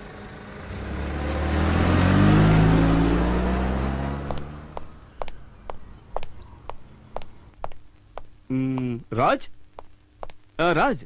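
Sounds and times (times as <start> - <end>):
car engine passing by: 0.3 - 5.0.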